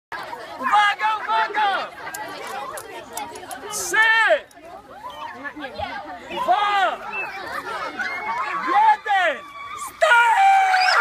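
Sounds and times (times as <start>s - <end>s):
group chatter: 0.1s - 11.0s.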